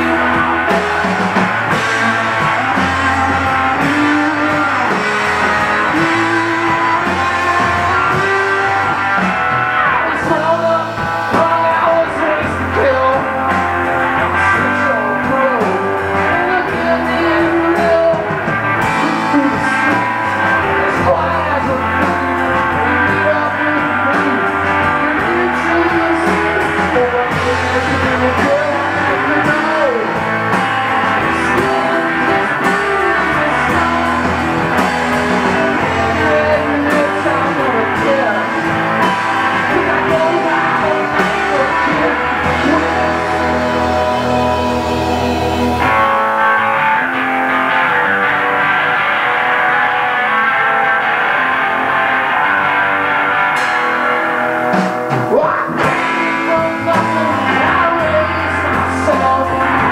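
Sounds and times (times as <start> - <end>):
live rock band playing: 0.0 - 59.9
shouted lead vocal: 0.0 - 59.9.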